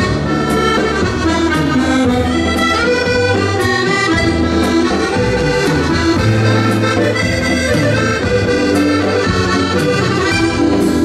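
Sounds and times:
accordions playing melody: 0.0 - 11.0
drums slow steady beat: 0.0 - 11.0
live band: 0.0 - 11.0.

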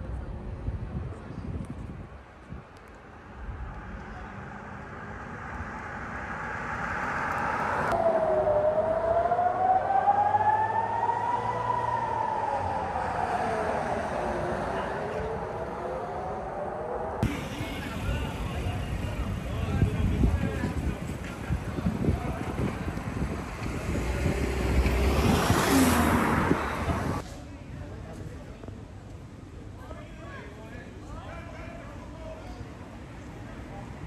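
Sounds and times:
wind on microphone: 0.0 - 8.4, 18.3 - 27.2
rumbling street noise: 0.0 - 34.0
air-raid siren wailing: 5.6 - 17.2.

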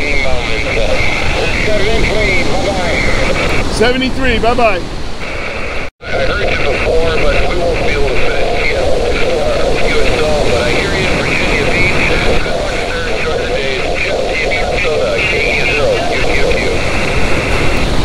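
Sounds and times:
garbled radio voice: 0.0 - 18.0
radio band noise: 0.0 - 18.0.

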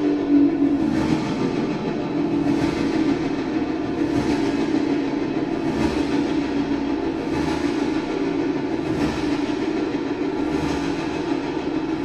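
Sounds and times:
loud droning experimental music: 0.0 - 12.0.

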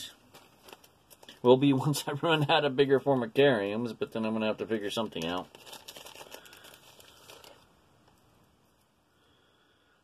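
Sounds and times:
crinkling handling noise: 0.0 - 3.4, 4.4 - 9.0.

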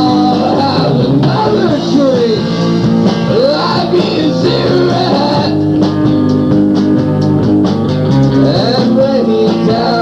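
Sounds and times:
drum and cymbal hits: 0.0 - 10.0
rock band playing live: 0.0 - 10.0.

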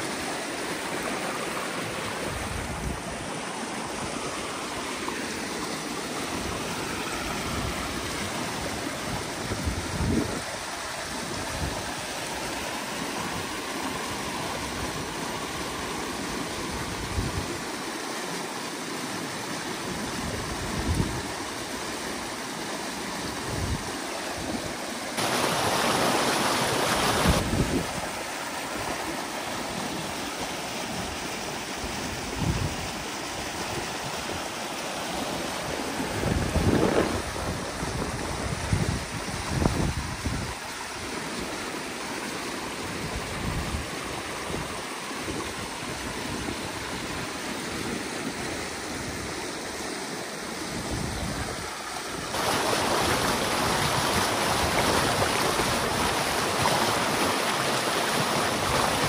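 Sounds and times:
water rushing down a ditch: 0.0 - 59.0.

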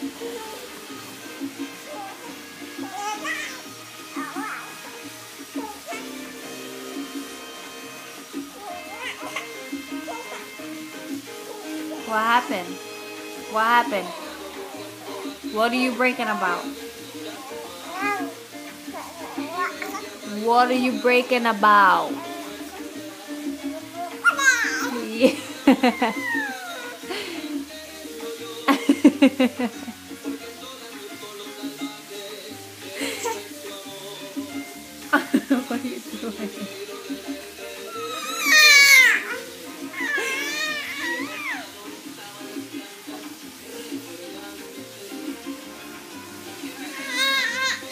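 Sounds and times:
background music: 0.0 - 47.9
baby cooing: 0.1 - 15.4, 16.2 - 21.0, 21.7 - 27.6, 33.0 - 33.7, 37.7 - 41.8, 46.7 - 47.9
baby squealing: 1.9 - 4.9, 8.6 - 10.7, 17.4 - 20.2, 24.0 - 25.0, 25.9 - 27.1, 37.9 - 41.7, 46.8 - 47.9.

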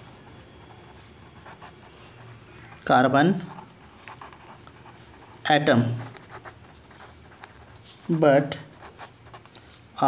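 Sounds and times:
pen scratching on paper: 0.0 - 9.8.

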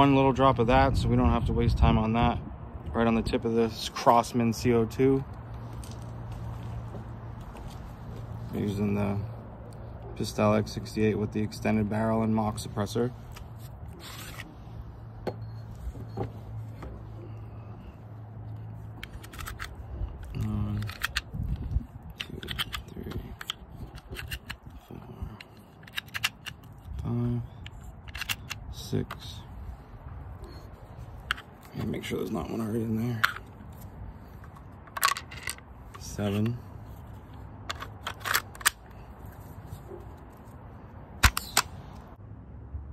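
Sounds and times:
pistol handling clicks and scrapes: 12.2 - 17.6, 18.3 - 42.1
pistol mechanism clicks: 19.0 - 27.0, 27.6 - 29.3, 37.7 - 39.0, 41.2 - 41.8.

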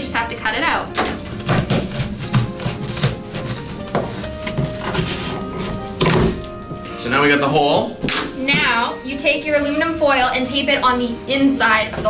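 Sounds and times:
background music: 0.0 - 12.0
scissors cutting cardboard: 1.3 - 6.9.

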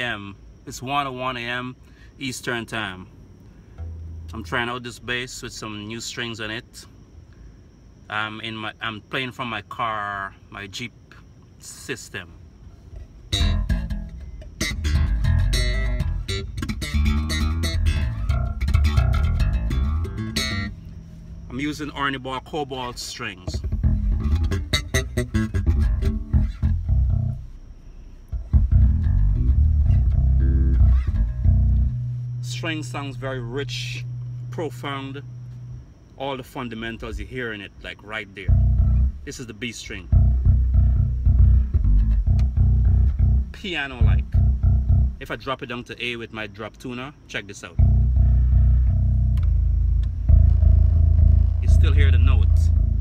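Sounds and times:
electric bass notes: 2.4 - 6.4, 12.8 - 46.2, 47.6 - 53.0.

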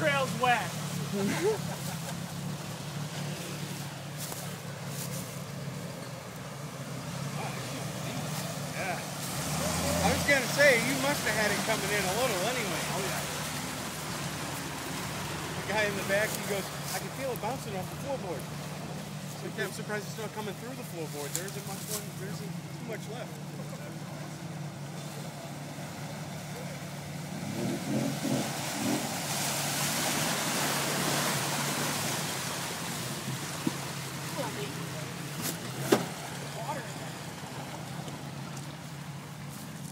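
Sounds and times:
low engine hum: 0.0 - 39.9
tyres churning water and mud: 0.0 - 39.9.

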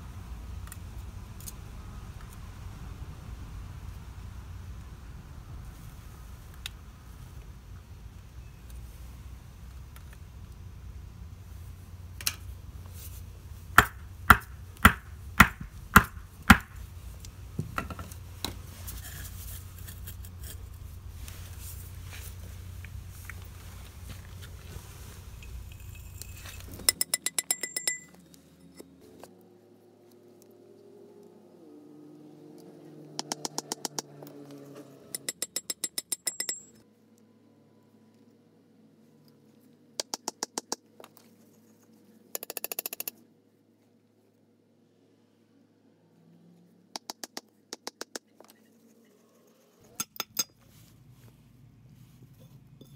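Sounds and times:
hammer knocking on wooden block: 13.8 - 16.8.

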